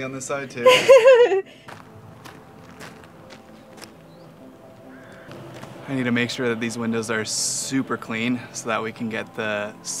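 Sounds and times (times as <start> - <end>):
footsteps on gravel: 1.6 - 6.2.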